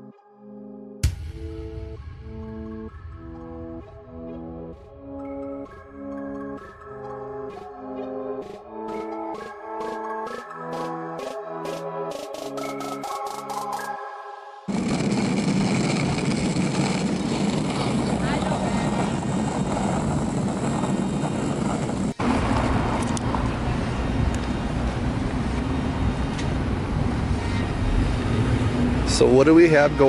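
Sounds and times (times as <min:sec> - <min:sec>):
loud rush of street noise: 0:14.7 - 0:30.0
traffic: 0:14.7 - 0:30.0.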